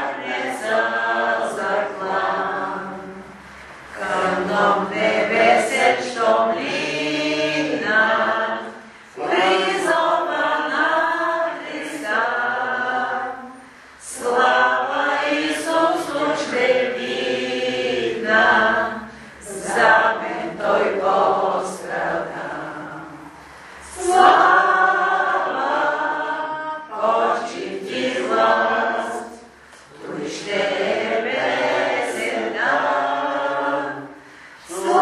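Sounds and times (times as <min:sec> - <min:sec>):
group singing devotional song: 0:00.0 - 0:35.0.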